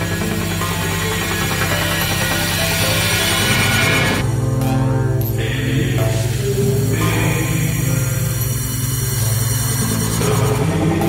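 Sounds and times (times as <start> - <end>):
fast low electronic pulse: 0.0 - 5.2
bass pattern: 0.0 - 11.0
higher synth layer: 0.0 - 11.0
low synth drone: 0.0 - 11.0.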